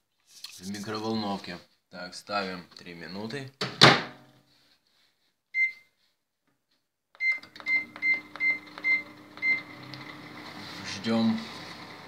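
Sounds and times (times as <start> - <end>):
microwave oven beeping: 7.2 - 10.4
microwave oven humming: 7.5 - 12.0.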